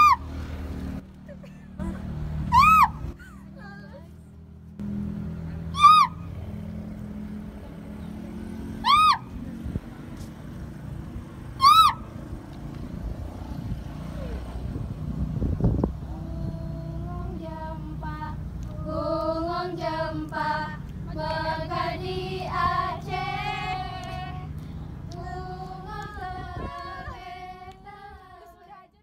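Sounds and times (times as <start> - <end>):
short high rising calls: 0.0 - 0.3, 2.4 - 3.2, 5.6 - 6.4, 8.8 - 9.4, 11.6 - 12.2
voices singing together: 16.2 - 29.0.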